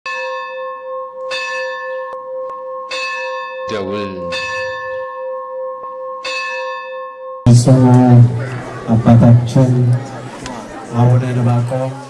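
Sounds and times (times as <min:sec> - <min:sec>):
large bell ringing: 0:00.1 - 0:09.6.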